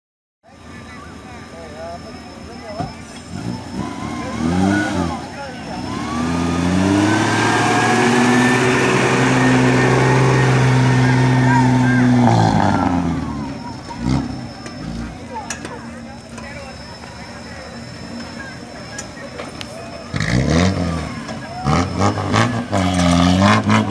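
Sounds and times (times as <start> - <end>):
off-road vehicle engine revving: 0.6 - 23.9.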